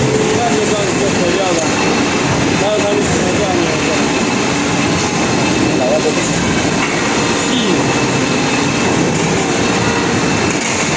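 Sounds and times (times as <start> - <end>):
conveyor belt running: 0.0 - 10.9
injection moulding machine noise: 0.0 - 10.9.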